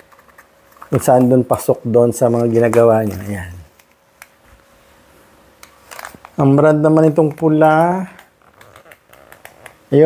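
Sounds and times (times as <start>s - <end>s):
man talking: 0.9s - 3.7s, 6.4s - 8.2s.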